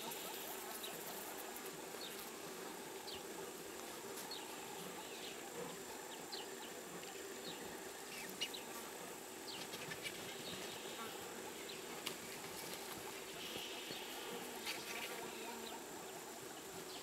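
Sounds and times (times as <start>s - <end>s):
high insect drone: 0.0s - 17.0s.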